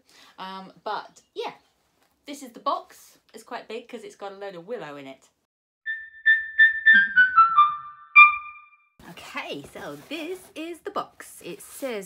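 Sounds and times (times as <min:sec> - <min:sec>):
keyboard notes jingle: 0:05.9 - 0:08.9.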